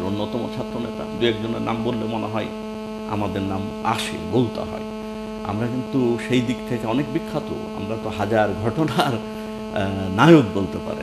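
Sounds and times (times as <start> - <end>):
man talking: 0.0 - 2.5, 3.1 - 4.8, 5.4 - 11.0
electrical mains hum: 0.0 - 11.0.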